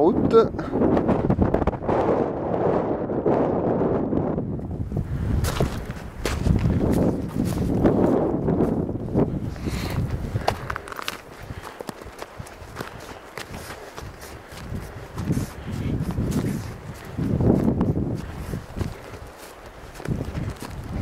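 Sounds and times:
wind buffeting microphone: 0:00.0 - 0:21.0
footsteps on snow: 0:05.1 - 0:21.0.

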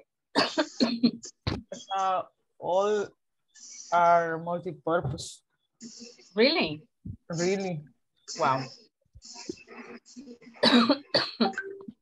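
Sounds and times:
person coughing: 0:10.6 - 0:11.5.

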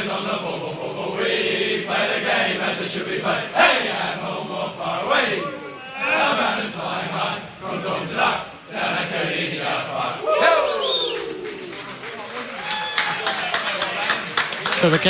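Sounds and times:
group singing a club song: 0:00.0 - 0:11.4
loud shouted cheer: 0:05.2 - 0:06.4, 0:10.2 - 0:14.7
people whooping: 0:05.3 - 0:06.4, 0:10.2 - 0:14.8
people clapping: 0:10.5 - 0:15.0.

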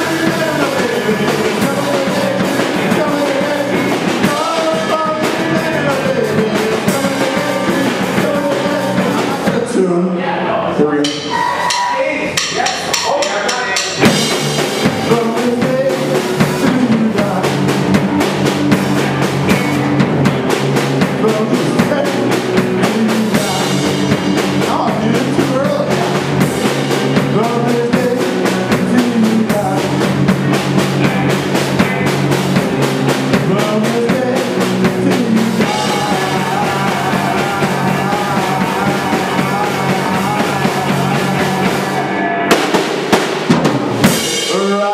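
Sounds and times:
live rock band playing: 0:00.0 - 0:10.1, 0:11.0 - 0:44.9
vocals: 0:00.0 - 0:44.9.

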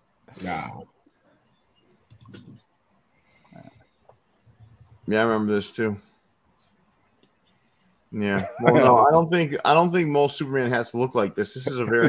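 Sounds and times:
soft vocal sounds: 0:00.3 - 0:00.9, 0:02.2 - 0:05.1
faint clicks: 0:02.0 - 0:02.6.

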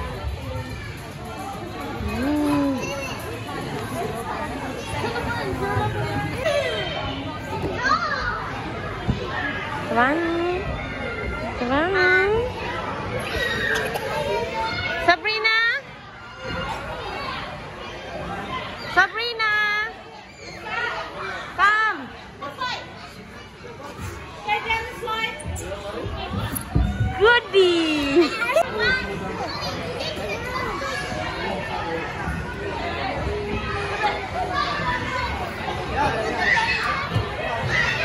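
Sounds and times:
children chattering and calling: 0:00.0 - 0:38.0
children squealing and shouting: 0:13.1 - 0:15.0.

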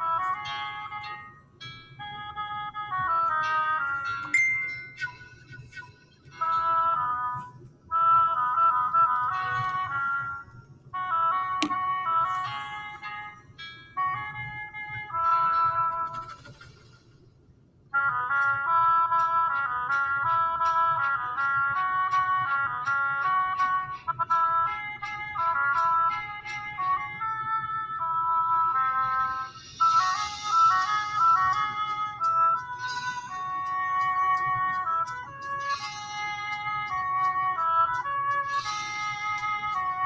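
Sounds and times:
solo oboe melody: 0:00.0 - 0:01.3, 0:02.0 - 0:13.4, 0:14.0 - 0:16.2, 0:18.0 - 0:40.0.

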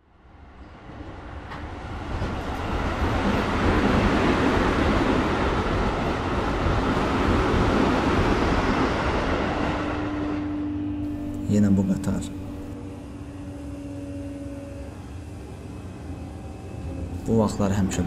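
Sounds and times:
metro train rumbling: 0:00.0 - 0:18.0
steady low tone: 0:10.6 - 0:18.0.

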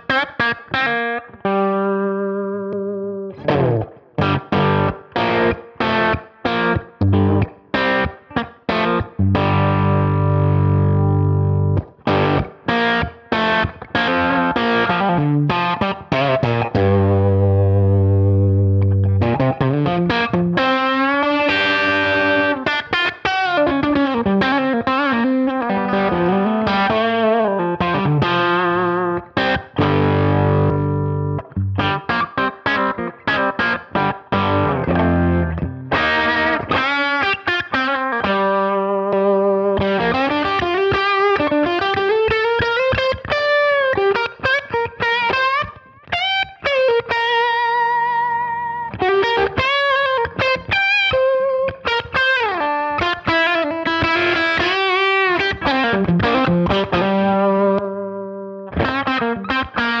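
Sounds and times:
overdriven electric guitar: 0:00.0 - 1:00.0.

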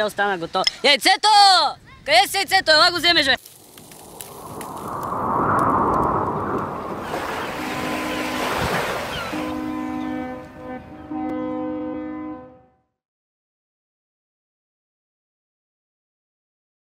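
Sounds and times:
rushing surf-like swell: 0:04.0 - 0:10.0
deep horn blasts: 0:06.9 - 0:13.0.

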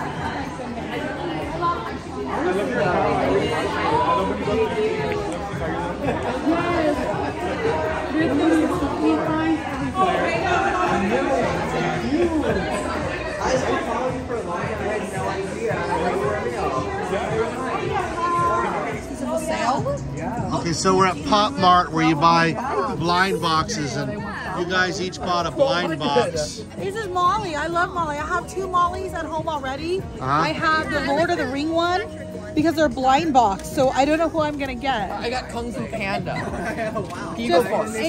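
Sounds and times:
people chattering: 0:00.0 - 0:38.0.

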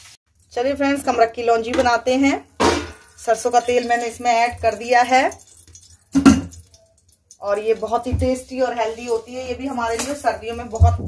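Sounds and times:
metallic clatter of kitchen utensils: 0:00.3 - 0:11.0.

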